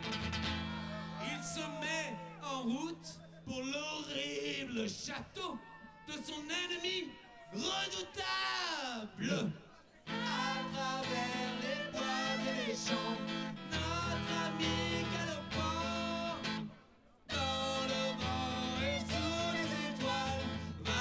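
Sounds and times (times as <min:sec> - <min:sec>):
electric guitar: 0:00.0 - 0:01.2, 0:10.1 - 0:21.0
man singing: 0:10.1 - 0:16.7, 0:17.3 - 0:21.0.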